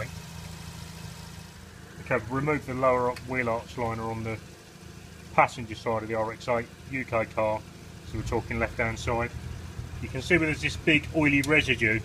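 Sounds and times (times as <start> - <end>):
low machine hum: 0.1 - 12.0.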